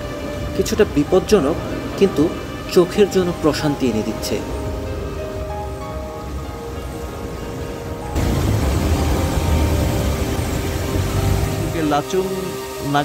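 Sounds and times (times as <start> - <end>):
background music with held notes: 0.0 - 13.0
fast-flowing stream water rushing: 0.0 - 13.0
low rumble: 8.0 - 11.8.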